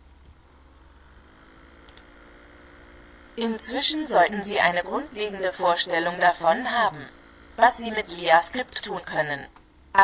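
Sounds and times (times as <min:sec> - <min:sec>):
background hiss: 0:00.0 - 0:04.8
low hum: 0:00.0 - 0:10.0.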